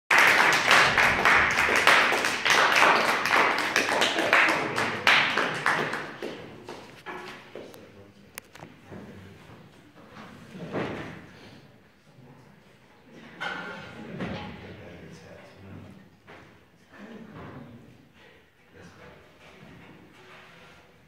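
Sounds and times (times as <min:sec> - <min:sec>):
audience applauding: 0:00.1 - 0:07.0.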